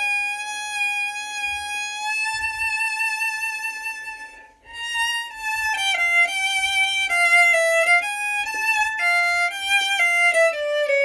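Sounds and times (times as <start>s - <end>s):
solo violin melody: 0.0s - 11.0s.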